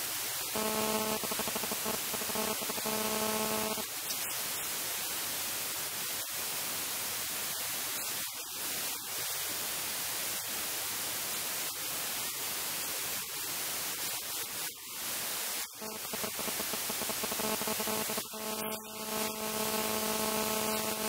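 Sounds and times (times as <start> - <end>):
static hiss: 0.0 - 21.0.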